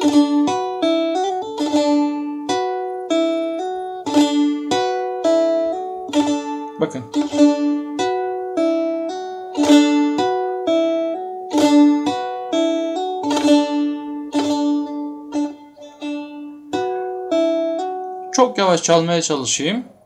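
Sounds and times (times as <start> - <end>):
plucked lute strings hammered: 0.0 - 18.8.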